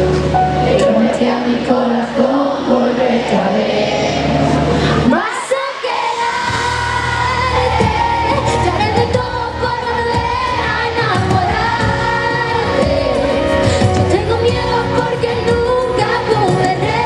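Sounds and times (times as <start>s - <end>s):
full band playing: 0.0s - 1.6s, 6.5s - 17.0s
woman singing into microphone: 0.6s - 3.8s, 4.8s - 17.0s.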